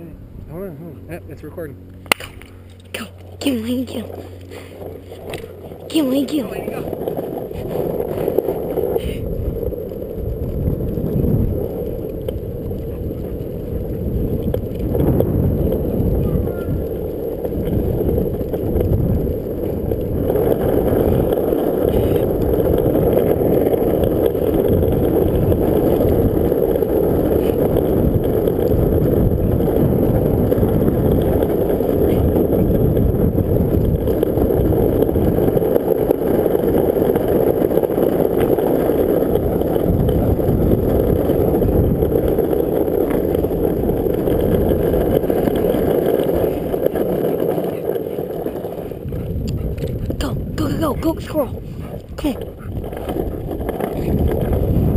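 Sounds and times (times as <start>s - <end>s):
longboard wheels rolling on asphalt: 0.0s - 54.9s.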